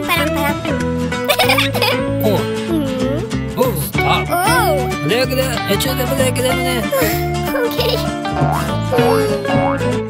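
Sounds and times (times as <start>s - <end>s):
background music: 0.0s - 10.0s
cartoon voice babbling: 2.7s - 3.3s, 8.4s - 9.6s.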